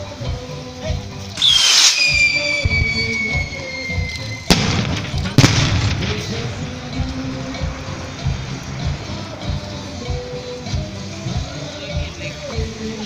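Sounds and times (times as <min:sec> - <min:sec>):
firework whistle sliding down: 0:01.4 - 0:04.6
firework rocket launch rush: 0:01.4 - 0:06.9
firework bangs: 0:01.4 - 0:09.2.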